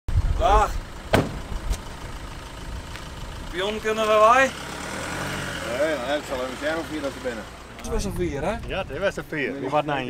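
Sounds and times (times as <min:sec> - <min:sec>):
truck door slamming: 0:01.1 - 0:01.9.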